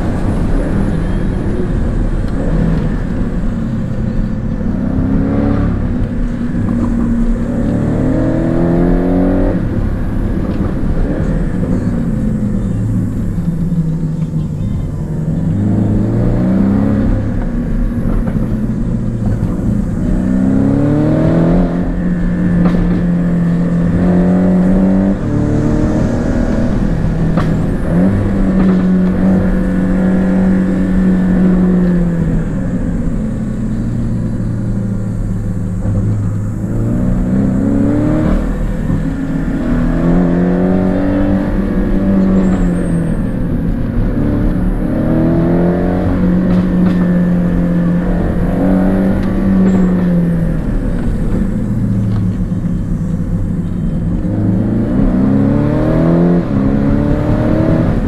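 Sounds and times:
car engine revving through gears: 0.0s - 58.0s.

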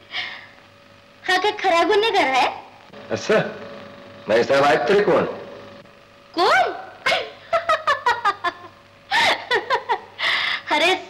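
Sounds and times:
woman laughing: 7.0s - 10.4s.

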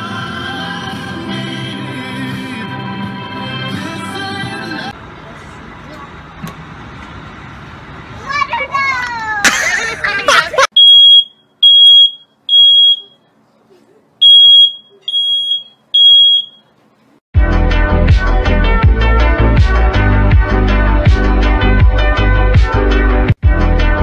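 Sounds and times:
smoke alarm beeping: 10.7s - 13.3s, 14.2s - 16.7s.

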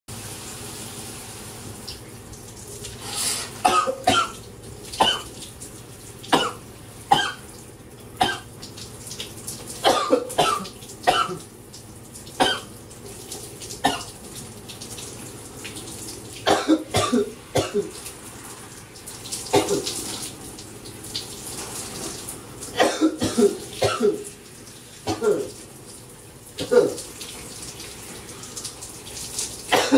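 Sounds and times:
shower running: 0.1s - 29.9s
man coughing: 9.9s - 11.4s, 16.5s - 17.9s, 22.8s - 24.2s, 25.1s - 25.5s, 26.6s - 27.0s.

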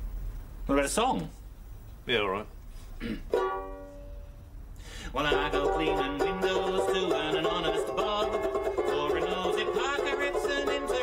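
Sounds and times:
person clearing throat: 3.0s - 3.4s
banjolele chord strummed: 3.3s - 4.4s, 5.2s - 11.0s.

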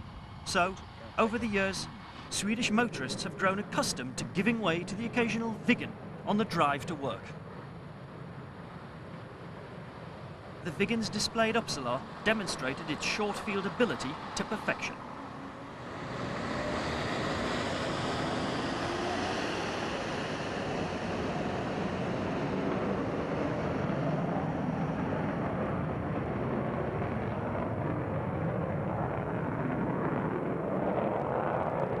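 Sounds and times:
loud jet engine rush: 0.0s - 32.0s.

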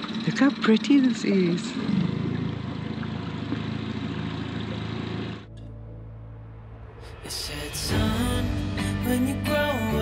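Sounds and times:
water: 0.0s - 5.5s
outboard motor running: 0.0s - 5.6s
wind: 0.0s - 7.9s
soft sustained music tones: 5.5s - 10.0s.

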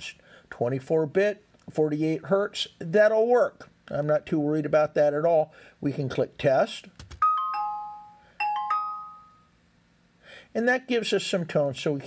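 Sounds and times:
falling chime: 7.2s - 9.5s
rising chime: 7.2s - 9.5s.

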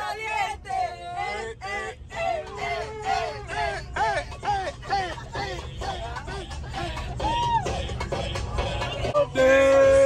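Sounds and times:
passengers shouting excitedly: 0.0s - 7.8s
bus engine rumble: 0.0s - 10.0s.

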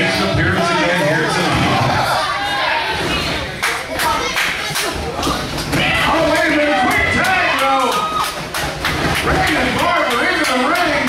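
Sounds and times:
crowd shouting: 0.0s - 3.6s, 5.7s - 8.6s.

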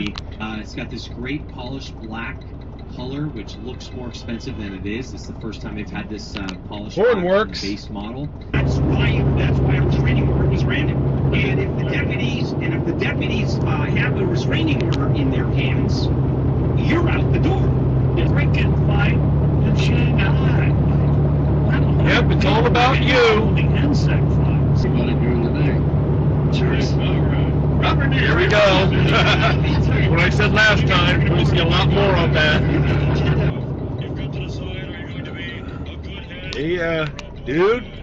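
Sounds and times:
people talking: 0.0s - 16.1s, 16.8s - 25.8s, 26.5s - 38.0s
engine and tyre drone: 0.0s - 38.0s
person talking: 5.8s - 15.7s, 21.7s - 25.8s, 36.3s - 38.0s.

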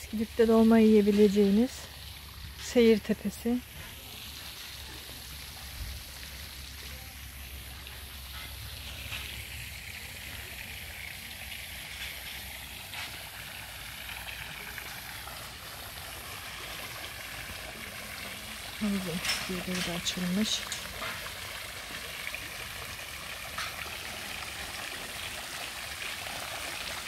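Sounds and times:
fountain water splashing: 0.0s - 27.0s.

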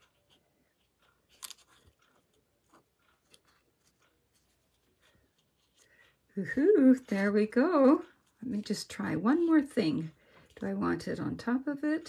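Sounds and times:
paper rustling: 0.0s - 6.2s.

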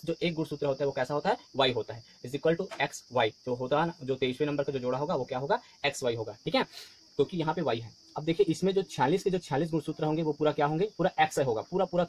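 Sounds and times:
high-pitched hiss: 0.0s - 12.0s
man speaking: 0.0s - 12.0s.

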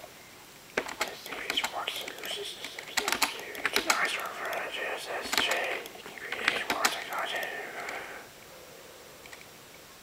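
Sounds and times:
sharp clicks and taps: 0.8s - 8.2s
low indistinct voice: 1.0s - 8.3s.

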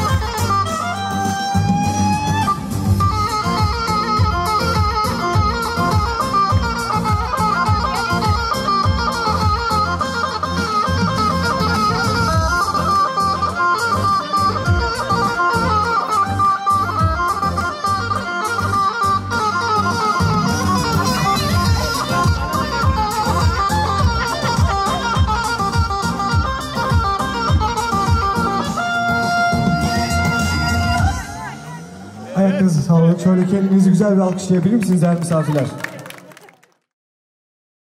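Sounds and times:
ornamented lead melody: 0.0s - 34.1s.

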